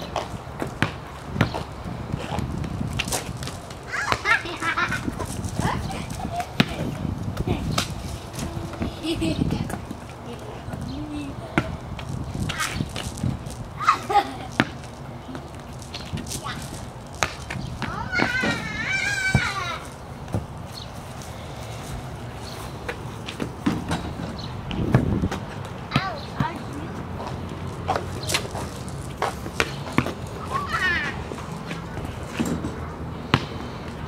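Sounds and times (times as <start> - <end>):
ball bouncing on concrete: 0.0 - 21.3, 22.8 - 34.0
children's voices and calls: 3.9 - 14.6, 16.2 - 16.9, 17.7 - 20.1, 25.8 - 28.8, 30.3 - 31.7
child calling out: 17.9 - 19.9, 30.4 - 31.2.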